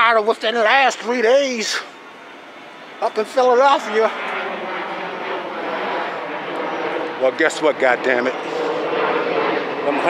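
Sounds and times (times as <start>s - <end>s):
airplane engine drone: 0.0s - 10.0s.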